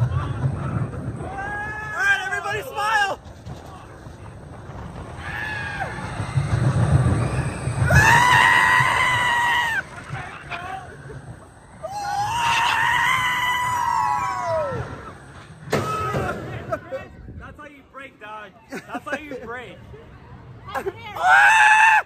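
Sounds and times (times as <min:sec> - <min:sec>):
riders screaming and whooping: 0:00.0 - 0:04.0, 0:04.7 - 0:16.8, 0:20.7 - 0:22.0
roller coaster train rumble: 0:00.0 - 0:22.0.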